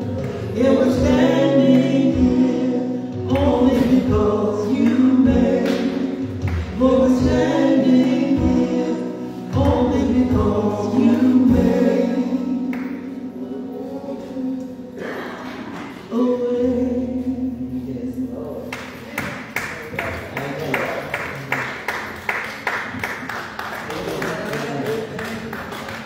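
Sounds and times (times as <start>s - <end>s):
steady bass line: 0.0s - 13.7s
group of voices singing: 0.0s - 18.2s.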